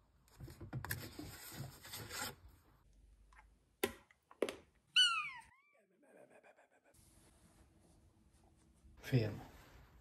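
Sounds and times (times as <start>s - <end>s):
kitten meowing: 5.0s - 5.8s.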